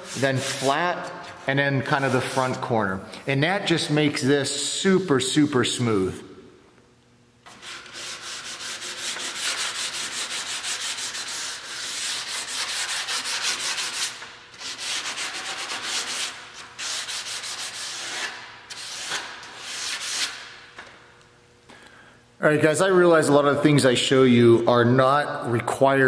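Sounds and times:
sandpaper rubbing on metal: 0.0 - 0.9, 1.9 - 2.6, 7.5 - 20.6.

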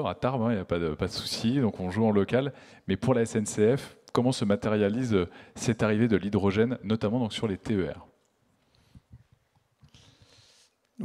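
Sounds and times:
soft hiss: 7.4 - 11.0.

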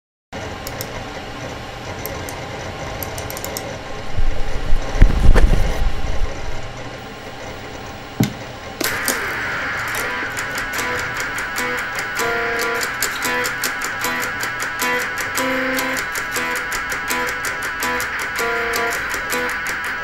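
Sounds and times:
sharp click: 0.6 - 0.9, 3.0 - 3.7
steady hiss: 7.0 - 20.0
electric guitar playing: 7.6 - 20.0.

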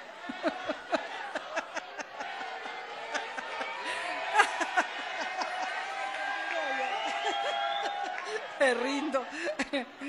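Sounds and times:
audience murmuring and chuckling: 0.0 - 6.0
woman laughing: 9.3 - 10.0.

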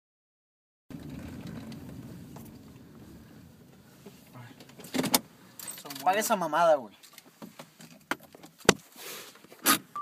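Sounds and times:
car rumble from inside cabin: 0.9 - 5.3.

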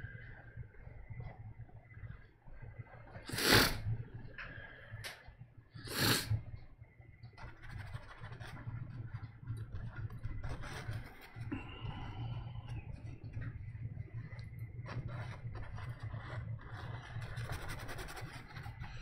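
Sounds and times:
steady low hum: 0.0 - 19.0
paintbrush scratching on canvas: 14.2 - 19.0.

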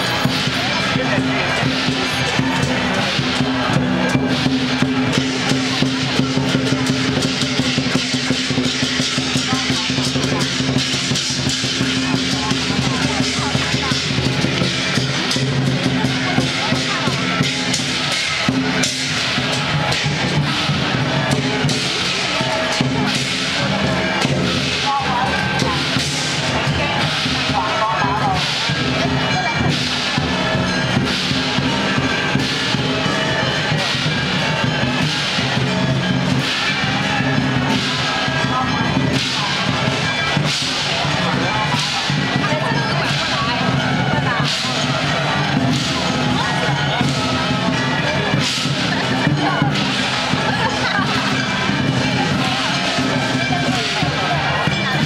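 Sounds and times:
cymbal crashes: 0.0 - 54.8
crowd chatter: 0.0 - 55.0
drum beats: 0.0 - 55.0.

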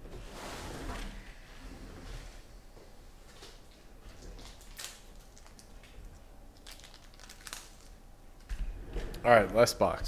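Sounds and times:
packaging crinkling: 4.4 - 8.0.

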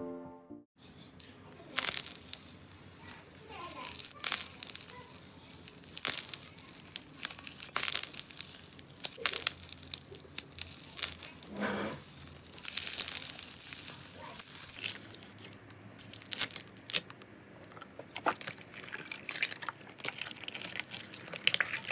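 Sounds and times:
slime crackling pops: 1.7 - 2.5, 3.5 - 15.4.

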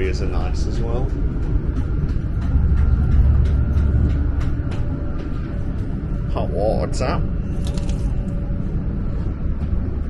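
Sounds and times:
train running rumble: 0.0 - 10.0.

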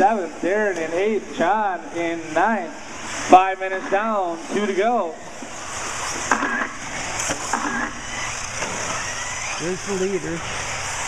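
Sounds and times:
rc buggies high-pitched buzz: 2.3 - 11.0.

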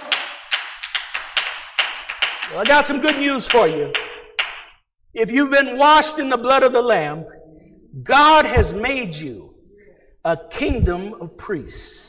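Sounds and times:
people clapping: 0.0 - 4.8.

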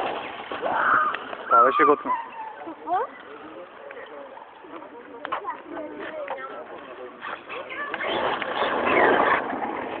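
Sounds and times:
toy truck driving on asphalt: 5.3 - 10.0.

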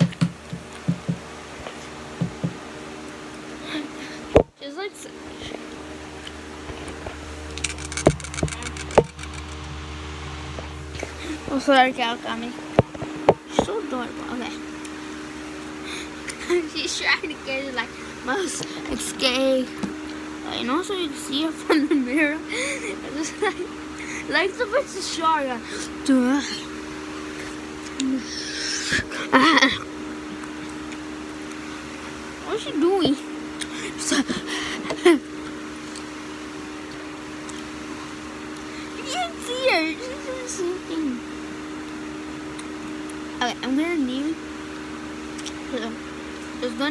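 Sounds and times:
sharp knocks: 0.0 - 1.2
steady hum: 0.0 - 46.9.

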